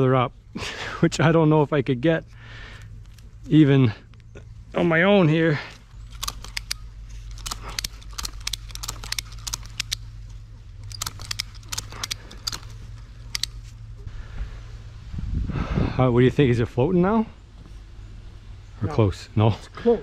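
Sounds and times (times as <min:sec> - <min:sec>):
low steady hum: 0:00.0 - 0:20.0
ratchet strap clicks and crackles: 0:06.0 - 0:13.8.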